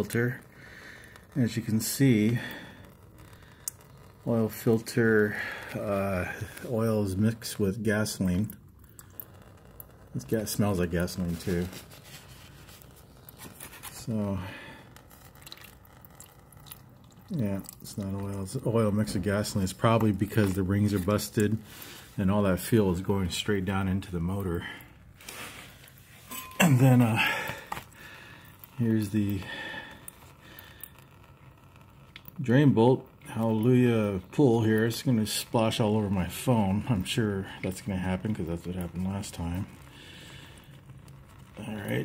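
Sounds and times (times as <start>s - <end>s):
oil trickling into a pan: 0.0s - 42.0s
gloved hand rustling on metal: 11.3s - 14.2s, 25.2s - 27.9s.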